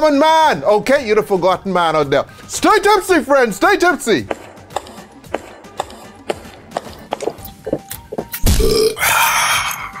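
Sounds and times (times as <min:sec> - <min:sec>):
low burp: 0:08.5 - 0:09.7.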